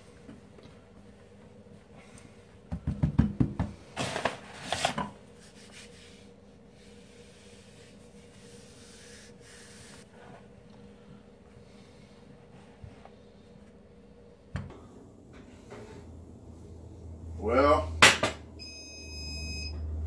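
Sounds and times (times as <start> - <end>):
faint steady hum: 3.5 - 20.0.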